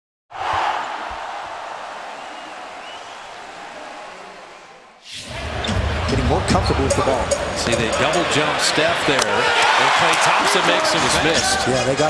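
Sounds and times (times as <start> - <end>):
crowd noise: 0.3 - 12.0.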